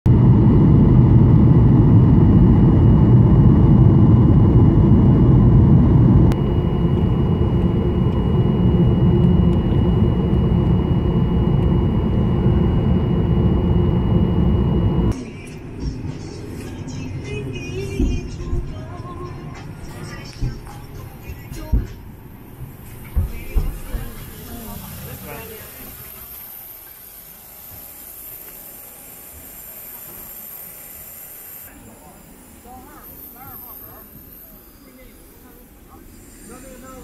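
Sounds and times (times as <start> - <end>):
quiet airplane cabin noise: 0.1 - 28.9
jet engine and airflow rumble: 0.1 - 37.0.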